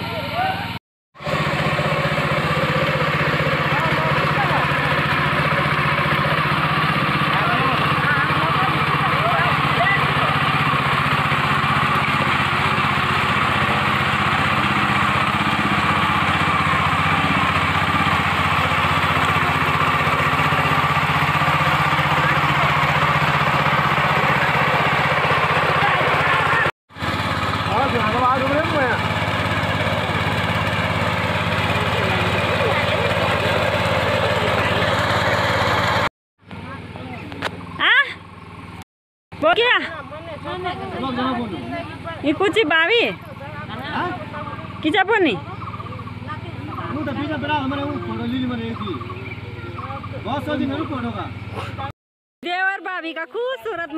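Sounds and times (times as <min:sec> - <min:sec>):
power tiller engine running: 0:00.0 - 0:38.8, 0:39.4 - 0:51.9.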